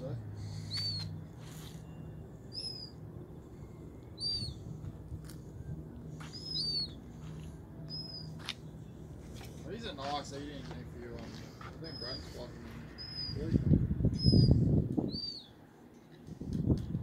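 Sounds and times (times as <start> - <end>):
low steady hum: 0.0 - 17.0
bird chirping: 0.4 - 4.8, 6.0 - 9.0, 11.8 - 15.6.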